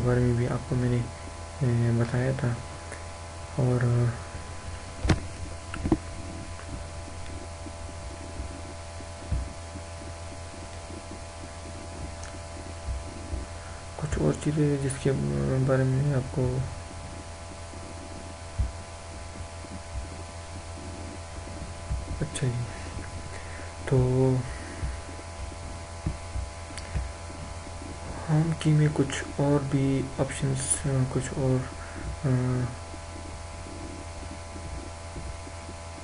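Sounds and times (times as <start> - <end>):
background hiss: 0.0 - 36.0
low electrical hum: 0.0 - 36.0.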